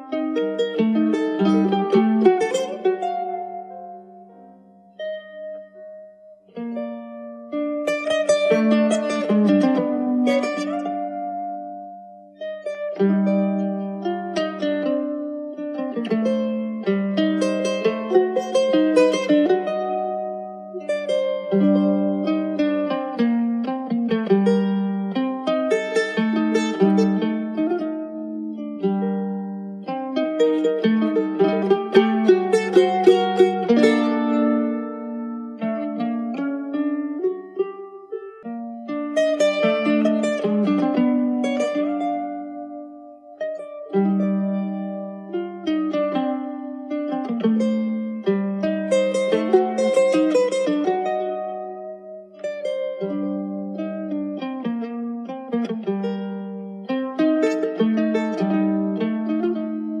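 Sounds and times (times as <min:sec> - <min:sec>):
plucked string instrumental: 0:00.0 - 1:00.0.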